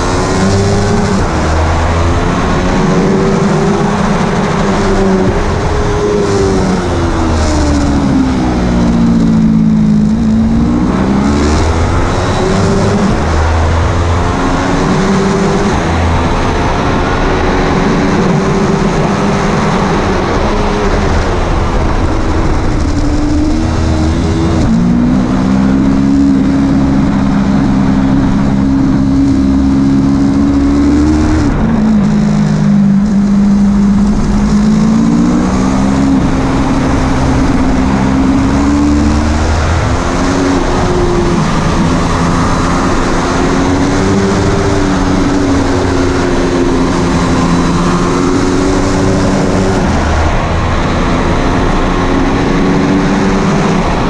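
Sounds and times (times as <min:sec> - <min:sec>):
motorcycle engine running hard: 0:00.0 - 0:54.0.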